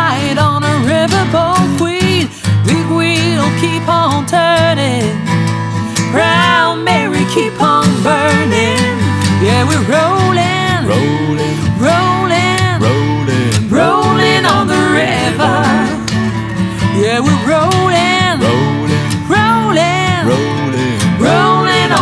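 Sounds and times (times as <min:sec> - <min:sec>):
woman and man singing: 0:00.0 - 0:05.3, 0:06.0 - 0:22.0
acoustic guitars strumming: 0:00.0 - 0:22.0.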